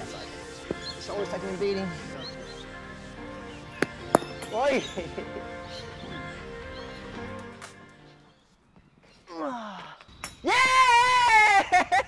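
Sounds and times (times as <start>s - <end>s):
music: 0.0s - 8.6s
bat striking ball: 0.6s - 0.9s, 3.8s - 4.7s
cricket ball bouncing on pitch: 0.7s - 0.9s, 3.8s - 4.6s.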